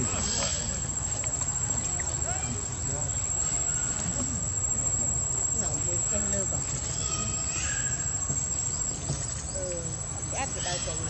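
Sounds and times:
faint murmured voices: 0.0s - 11.0s
high-pitched insect drone: 0.0s - 11.0s.

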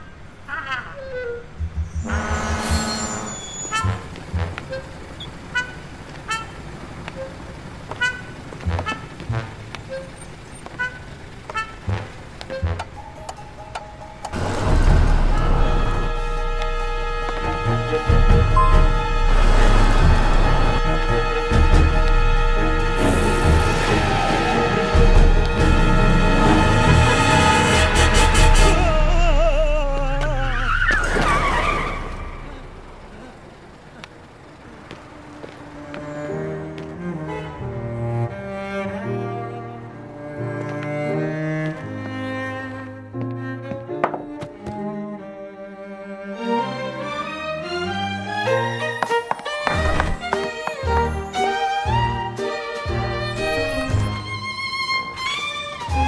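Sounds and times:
car tyres screeching: 1.0s - 13.0s, 14.3s - 42.9s, 47.8s - 51.5s
truck driving by: 1.6s - 42.0s.

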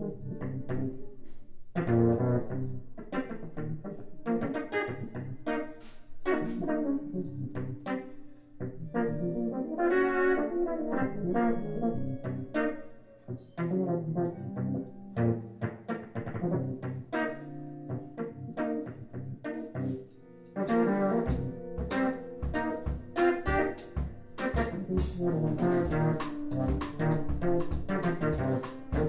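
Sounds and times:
electric guitar: 0.0s - 29.0s
wind synthesizer melody: 1.8s - 29.0s
drums with cymbals: 20.7s - 29.0s
upright bass: 20.7s - 29.0s.

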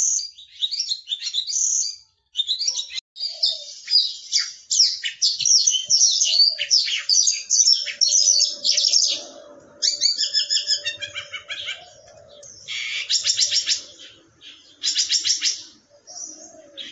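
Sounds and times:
lark singing trills: 0.0s - 16.9s.

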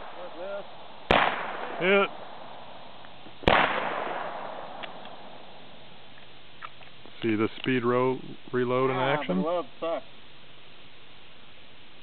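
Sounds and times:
gunshot echo: 0.0s - 5.6s
revolver shots: 1.1s - 2.7s, 3.4s - 5.4s.

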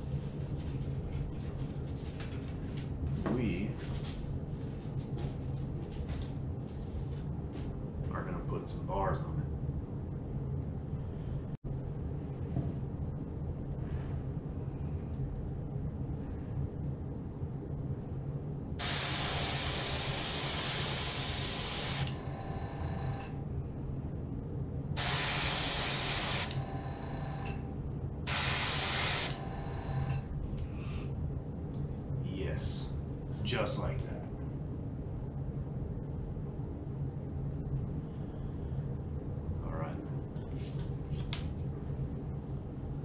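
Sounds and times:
steady low hum: 0.0s - 43.0s
airbrush spraying hiss: 18.8s - 22.2s, 25.0s - 26.7s, 28.3s - 29.4s.

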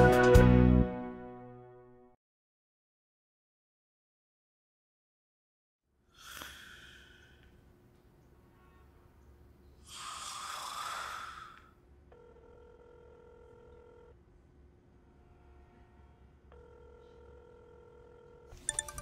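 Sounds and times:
telephone ringback tone: 12.1s - 14.2s, 16.5s - 19.0s
chiming phone ringtone: 12.2s - 14.1s, 16.5s - 19.0s.

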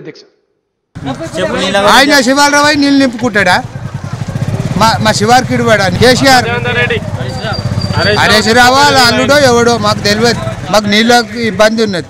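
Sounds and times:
man speaking: 1.0s - 3.7s, 4.8s - 12.0s
engine running: 1.0s - 12.0s.

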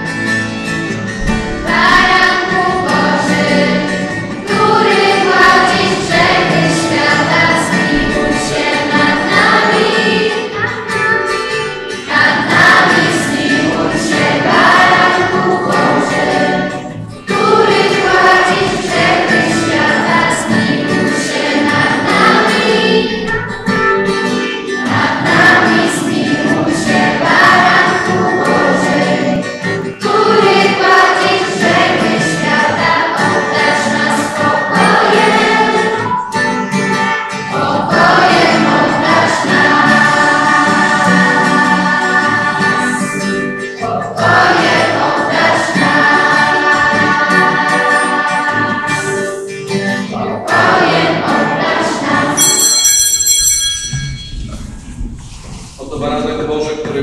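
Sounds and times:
choir singing a hymn: 1.0s - 52.7s.

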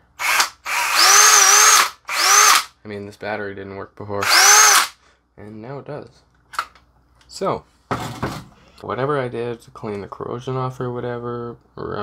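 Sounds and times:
cordless drill motor whine: 0.2s - 2.7s, 4.2s - 4.9s.

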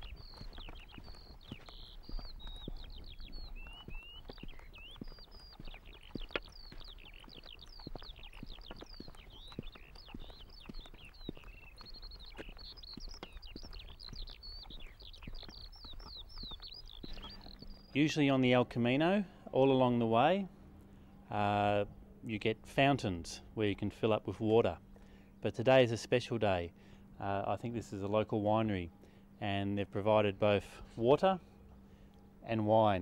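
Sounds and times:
birds chirping and trilling: 0.0s - 21.2s.

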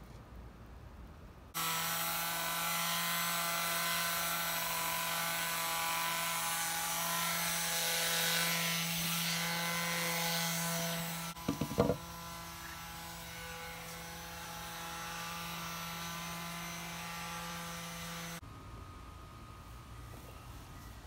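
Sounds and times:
electric sander sanding wood: 1.6s - 18.4s.

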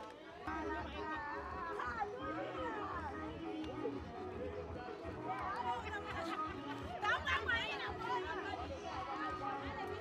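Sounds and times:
people chattering and calling out: 0.0s - 10.0s.

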